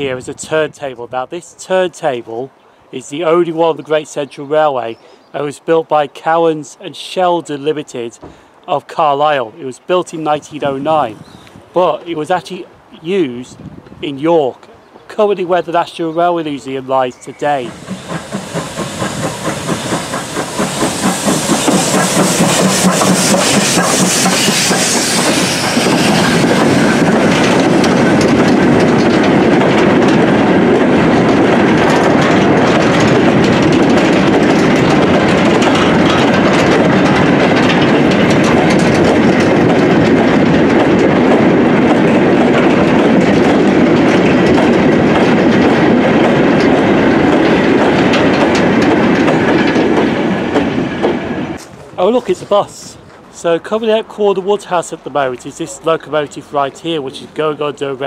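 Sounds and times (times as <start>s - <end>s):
wagons rumbling: 0.0s - 58.0s
wheels clicking over rail joints: 14.6s - 58.0s
steam locomotive exhaust beating: 17.2s - 58.0s
hiss of steam: 17.6s - 27.3s.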